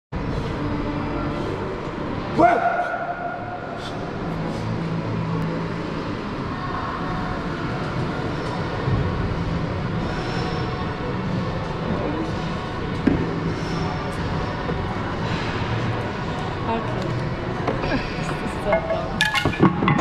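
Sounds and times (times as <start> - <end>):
busy gym background rumble: 0.1 - 20.0.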